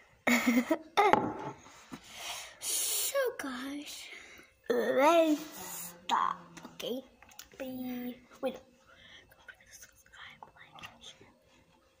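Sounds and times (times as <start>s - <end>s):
girl whispering: 9.3s - 11.2s.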